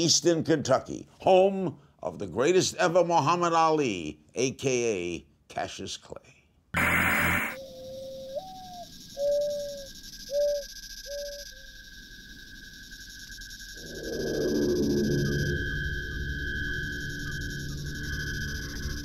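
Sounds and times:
bird cooing: 0:07.6 - 0:11.5
faint steady high tone: 0:10.4 - 0:19.0.

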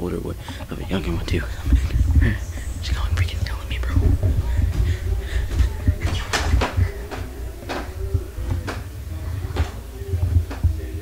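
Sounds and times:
low rumble: 0:00.6 - 0:10.8.

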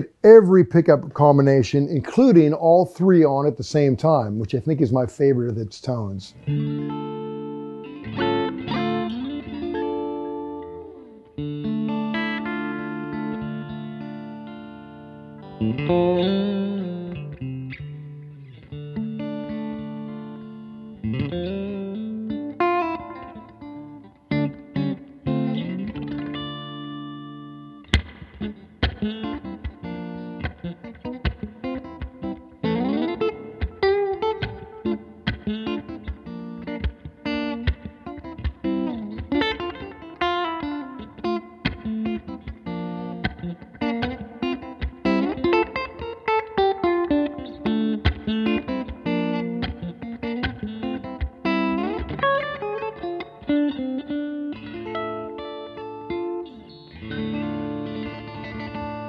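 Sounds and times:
clean electric guitar playing: 0:00.0 - 0:59.0.

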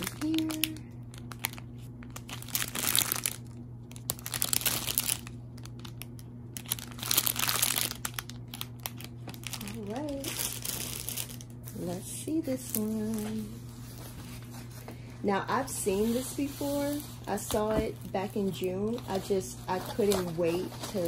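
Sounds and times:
plastic bag crinkling: 0:00.0 - 0:14.8, 0:15.6 - 0:21.0.

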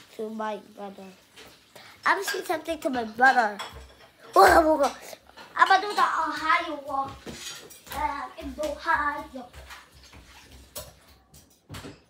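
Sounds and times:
water running from tap: 0:00.0 - 0:12.0.

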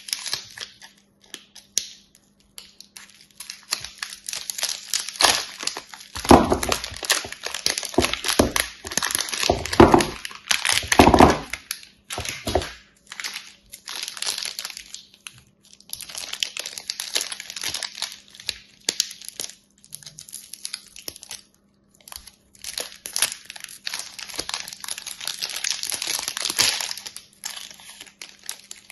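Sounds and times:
plastic wrappers crinkling: 0:00.0 - 0:28.9.

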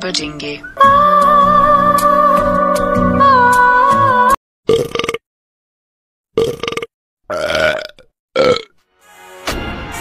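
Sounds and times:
croaky belches: 0:04.7 - 0:05.2, 0:06.4 - 0:08.8.

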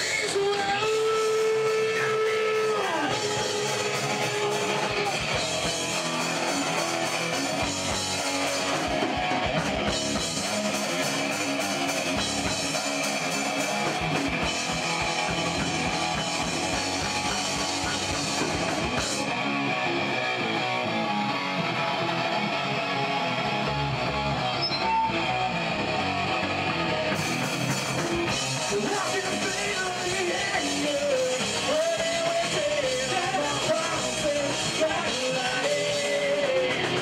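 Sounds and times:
live rock band playing: 0:00.0 - 0:37.0.

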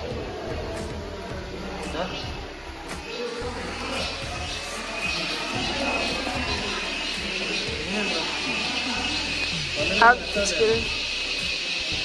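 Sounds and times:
music playing: 0:00.0 - 0:12.0
people talking indistinctly: 0:00.0 - 0:12.0.

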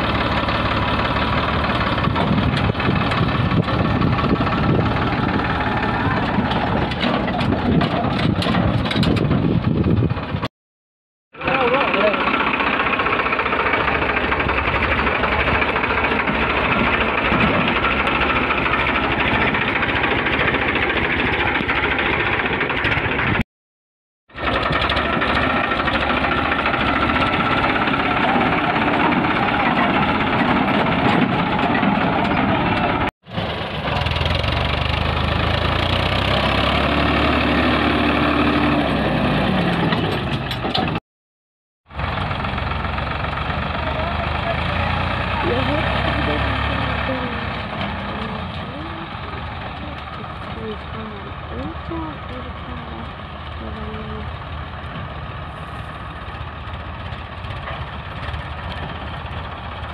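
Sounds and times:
tractor diesel engine running: 0:00.0 - 0:10.5, 0:11.4 - 0:23.4, 0:24.3 - 0:41.0, 0:41.9 - 0:59.9.

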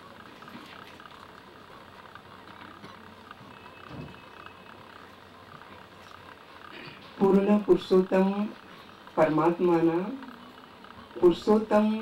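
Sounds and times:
faint ticks and rustles: 0:00.0 - 0:12.0.

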